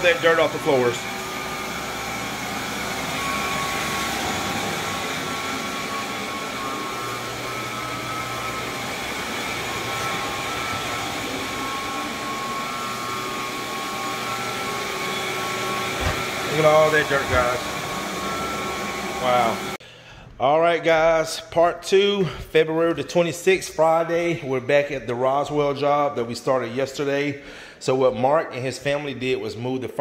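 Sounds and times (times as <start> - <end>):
floor scrubbing machine drone: 0.0 - 19.8
wet vacuum whine: 0.0 - 19.8.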